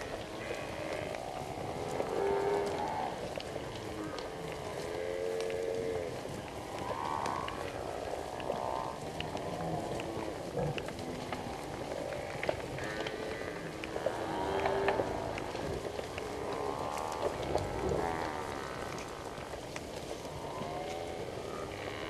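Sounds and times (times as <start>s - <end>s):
buffalo mooing calls: 0.0s - 19.4s.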